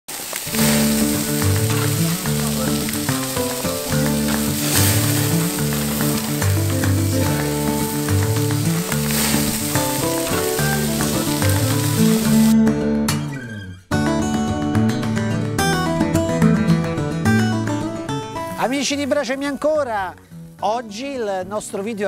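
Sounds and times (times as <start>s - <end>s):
patties sizzling on grill: 0.1s - 12.6s
background music: 0.5s - 22.0s.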